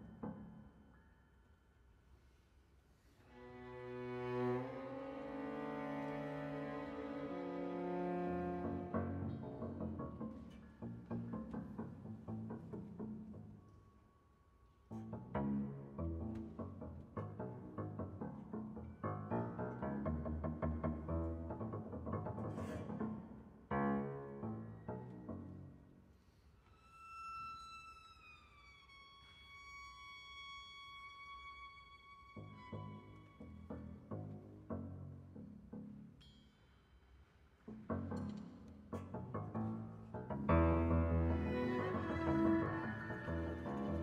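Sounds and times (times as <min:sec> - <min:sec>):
bowed strings: 0:03.2 - 0:13.7, 0:14.9 - 0:25.9, 0:26.8 - 0:36.5, 0:37.7 - 0:44.0
piano-led ensemble music: 0:03.4 - 0:13.6, 0:14.9 - 0:25.9, 0:37.7 - 0:44.0
double bass: 0:05.2 - 0:13.6, 0:14.9 - 0:25.7, 0:37.7 - 0:44.0.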